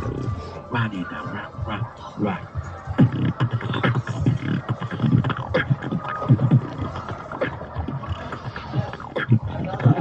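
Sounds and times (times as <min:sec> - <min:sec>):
beatboxing: 0:00.0 - 0:10.0.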